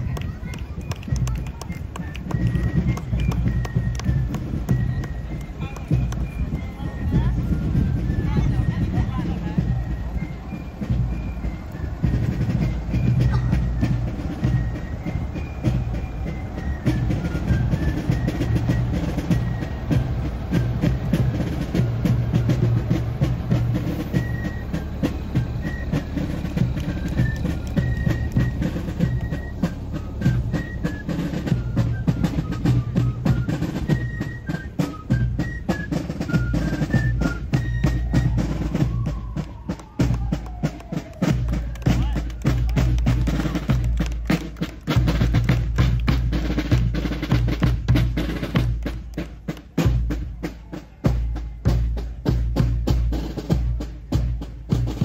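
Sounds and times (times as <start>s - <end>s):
drum strokes: 0.0s - 55.0s
fifes playing a march melody: 0.0s - 55.0s
fire engine rumble: 0.0s - 55.0s.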